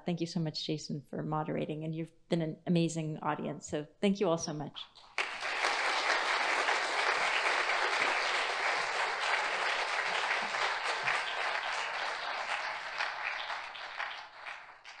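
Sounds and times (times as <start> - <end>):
audience applauding: 5.1 - 15.0.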